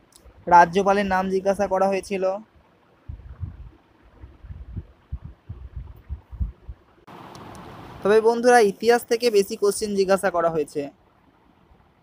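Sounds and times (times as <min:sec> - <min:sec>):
soft low thumps and rumbles: 0:03.0 - 0:07.0.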